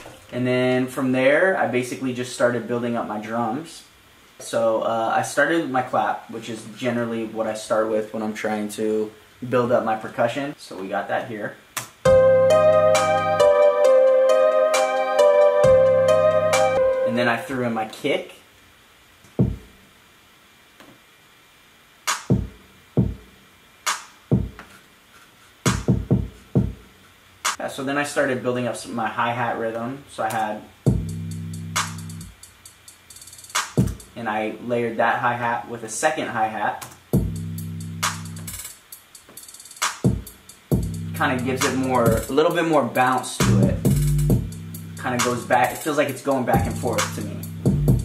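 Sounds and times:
quick hi-hat rhythm: 11.8 - 17.4, 22.0 - 24.8, 25.5 - 27.7, 30.2 - 34.3, 36.8 - 48.0
electronic kick drum: 12.1 - 13.5, 19.4 - 19.7, 22.2 - 23.3, 24.3 - 24.6, 25.7 - 26.9, 30.9 - 32.4, 33.6 - 34.1, 37.2 - 38.6, 40.0 - 42.3, 43.4 - 45.8, 46.5 - 48.0
long bass notes: 12.1 - 17.2, 40.8 - 42.1, 43.4 - 45.5, 46.6 - 48.0
sharp electronic clap: 22.1 - 22.5.

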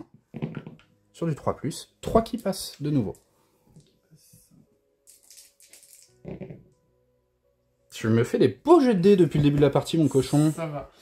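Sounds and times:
dice clattering on a mat: 5.1 - 6.1.

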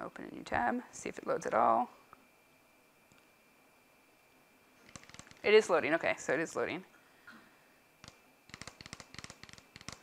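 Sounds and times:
fingernails drumming on surface: 8.0 - 10.0.

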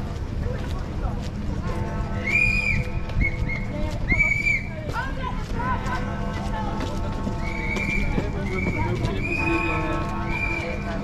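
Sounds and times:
crowd chatter: 0.0 - 11.0
horse hooves clip-clopping on road: 2.7 - 10.9.

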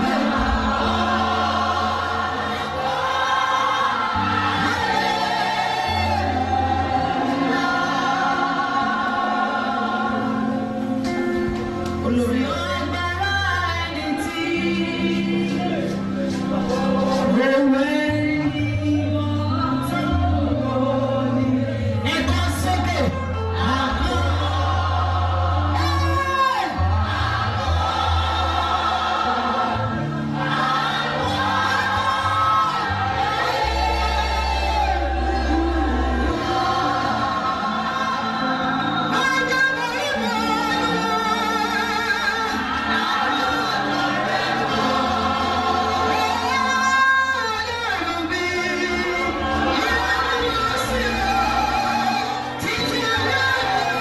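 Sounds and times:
choir singing: 0.0 - 22.3, 22.9 - 54.0
long held bass notes: 0.0 - 22.6
held bass notes: 0.0 - 47.4
band playing: 0.0 - 54.0.

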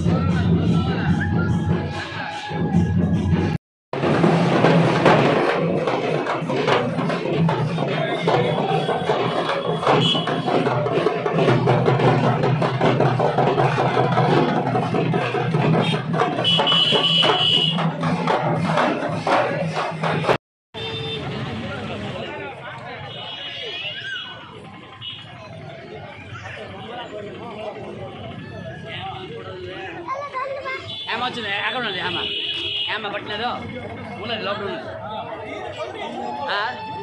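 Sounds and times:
drums and percussion beating: 0.0 - 23.2, 24.4 - 37.0
crowd chatter: 0.0 - 37.0
street procession music: 0.0 - 37.0.

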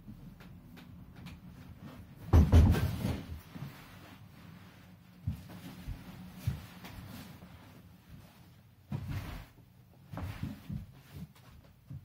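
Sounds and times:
handling and shuffling sounds: 1.5 - 12.0.

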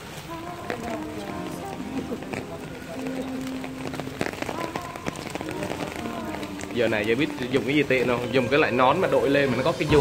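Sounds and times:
heavy rain on stone paving: 0.0 - 10.0.

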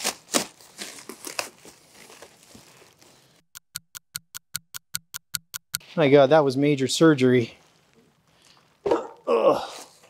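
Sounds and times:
fast even ticking: 3.5 - 5.8.

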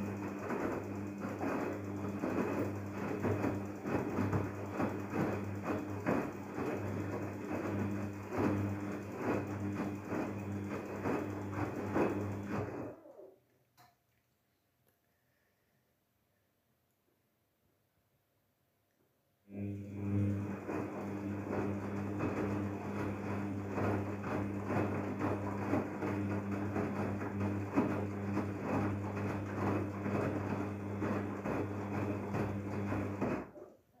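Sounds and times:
washing machine motor hum: 0.0 - 13.4, 19.5 - 34.0.

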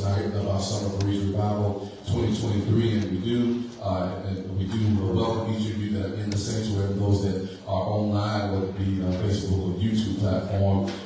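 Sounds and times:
man talking into microphone: 0.0 - 11.0.

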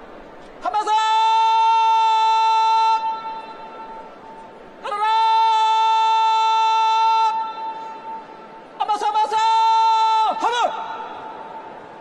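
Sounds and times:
person shouting a command: 0.6 - 3.5, 4.8 - 7.7, 8.8 - 11.2.

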